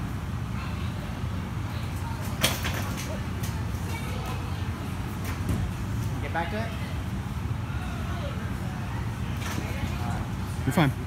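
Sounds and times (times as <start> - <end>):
gym hall background rumble: 0.0 - 11.0.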